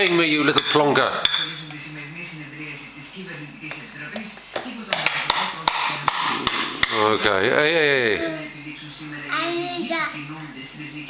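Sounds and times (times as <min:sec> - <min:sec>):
spoon and fork tapping plastic bowl: 0:03.7 - 0:07.0.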